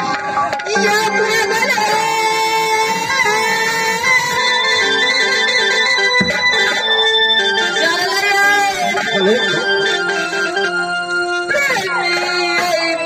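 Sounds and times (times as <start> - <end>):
person singing long notes: 0.0 - 6.7
harmonium playing: 0.0 - 13.0.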